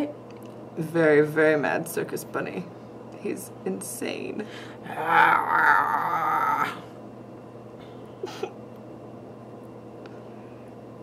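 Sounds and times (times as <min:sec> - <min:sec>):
faint steady hum: 0:00.0 - 0:11.0
person laughing: 0:08.2 - 0:08.6.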